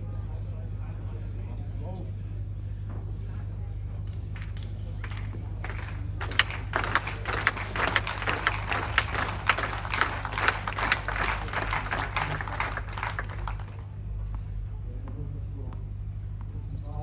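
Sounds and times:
low hum: 4.0 - 17.0
spectators applauding: 4.4 - 13.9.

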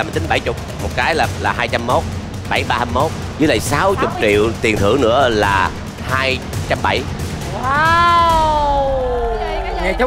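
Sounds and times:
high voice drawn-out exclamation: 3.8 - 4.5.

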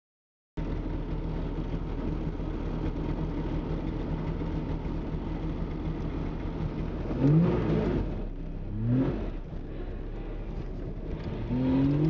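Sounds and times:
two-stroke engine idling: 0.6 - 7.1.

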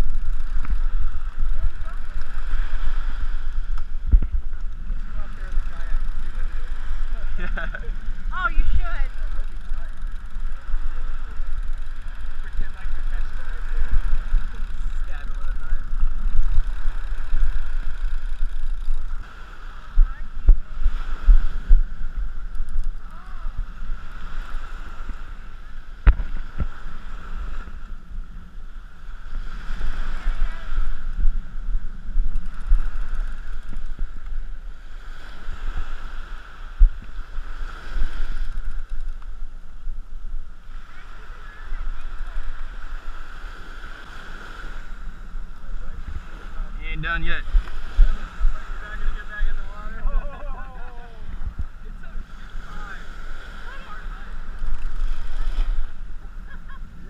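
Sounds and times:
small waves washing on sand: 0.0 - 57.0
wind buffeting microphone: 0.0 - 57.0.

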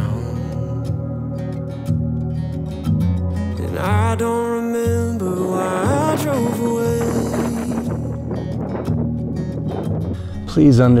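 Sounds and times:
country-style instrumental music: 0.0 - 11.0.

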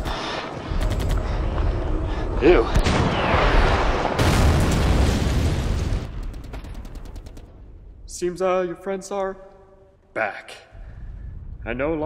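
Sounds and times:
gunshots: 0.0 - 1.4
deep rumbling explosion: 1.2 - 6.5, 10.8 - 12.0.

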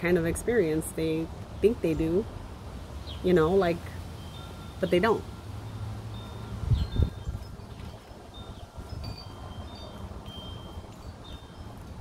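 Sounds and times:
wind chimes ringing: 3.3 - 12.0.

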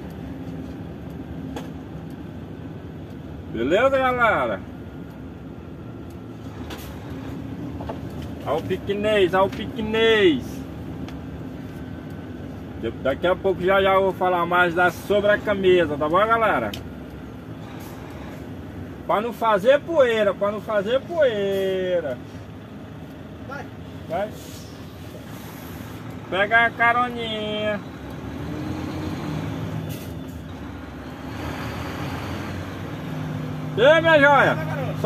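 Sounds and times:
truck diesel engine humming: 0.0 - 35.0.

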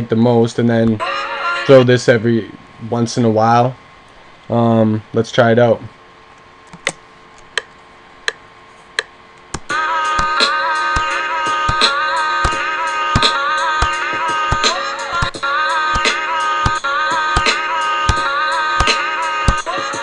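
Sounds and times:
chopped sample played on keyboard: 9.0 - 20.0
hip-hop drum pattern: 9.0 - 20.0.

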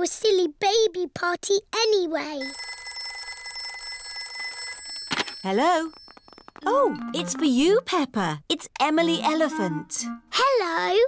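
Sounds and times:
cartoon telephone ringing: 2.4 - 7.6.

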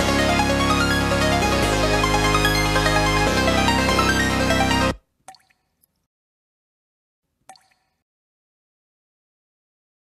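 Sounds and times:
liquid drop plink: 5.3 - 5.9, 7.5 - 8.0.

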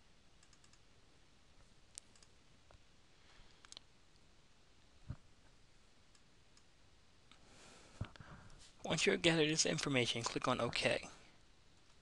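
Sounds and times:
faint computer mouse clicks: 0.4 - 0.8, 1.9 - 2.3, 3.6 - 3.9.

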